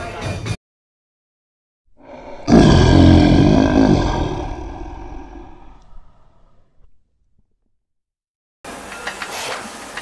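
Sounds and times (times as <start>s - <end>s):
lion roaring: 2.0s - 6.9s.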